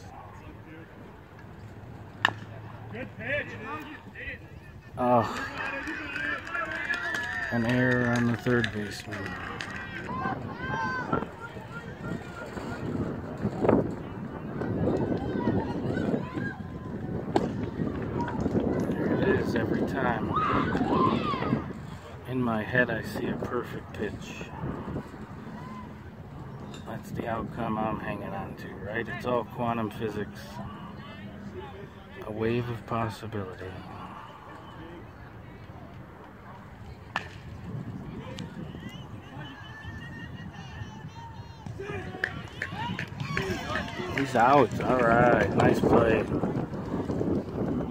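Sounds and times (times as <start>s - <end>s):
distant voices: 0.0s - 47.9s
wind on microphone: 8.4s - 29.0s, 36.4s - 47.9s
people calling out: 9.1s - 12.9s.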